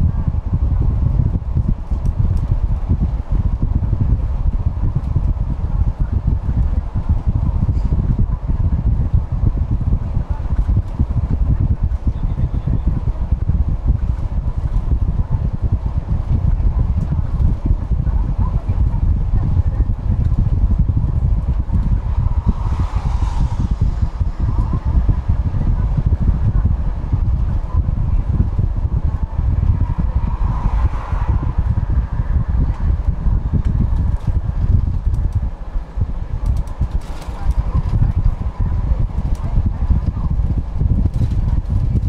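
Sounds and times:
bus engine and tyres rumbling: 0.0 - 42.0
brief rushing swells: 21.8 - 25.5.

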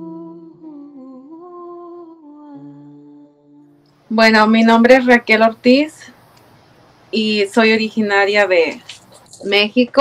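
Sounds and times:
soft humming background music: 0.0 - 4.8.

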